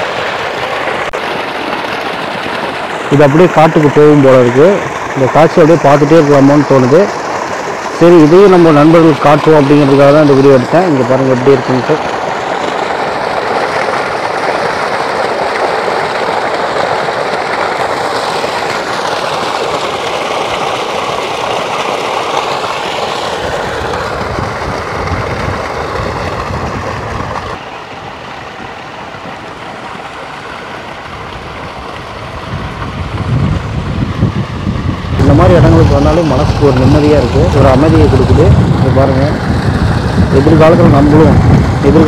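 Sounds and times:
water gushing into tank: 0.0 - 42.0
low rumbling: 32.2 - 42.0.

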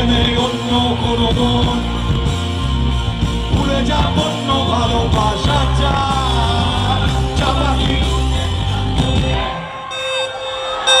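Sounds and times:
live concert music over speakers: 0.0 - 11.0.

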